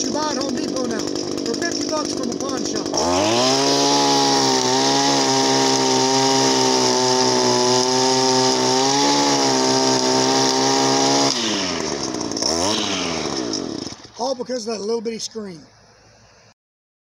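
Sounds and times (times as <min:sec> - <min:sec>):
string trimmer engine revving: 0:00.0 - 0:14.4.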